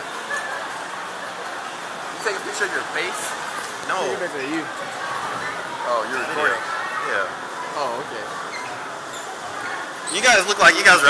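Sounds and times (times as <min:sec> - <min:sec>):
busy indoor background noise: 0:00.0 - 0:11.0
faint indistinct voices: 0:00.0 - 0:11.0.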